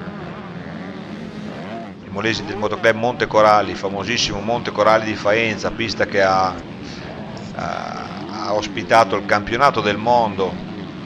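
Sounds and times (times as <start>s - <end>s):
motocross bike engines revving: 0.0s - 11.0s.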